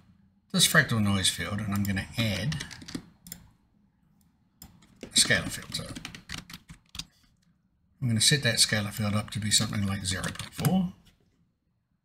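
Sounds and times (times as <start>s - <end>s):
computer keyboard typing: 1.7s - 3.5s, 4.6s - 7.1s.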